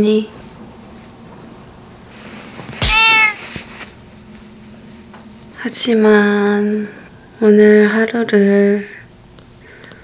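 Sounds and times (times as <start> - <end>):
house cat meowing: 2.8 - 3.4.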